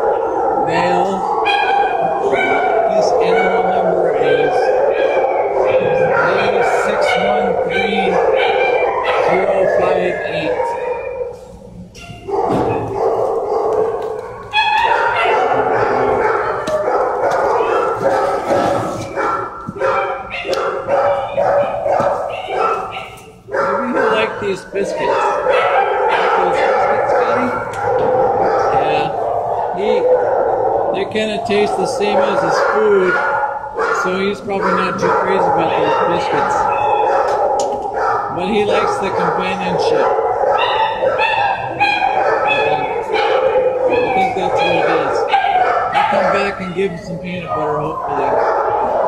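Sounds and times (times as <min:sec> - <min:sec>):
dogs barking and yipping: 0:00.0 - 0:49.0.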